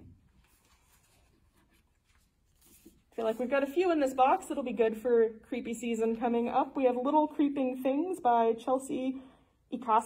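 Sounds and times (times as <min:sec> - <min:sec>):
faint rustling of book handling: 0:00.0 - 0:04.7.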